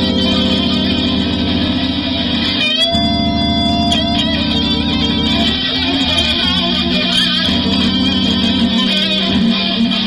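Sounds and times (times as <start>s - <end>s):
electric guitar bending notes: 0.0s - 10.0s
electric piano playing blues: 0.0s - 10.0s.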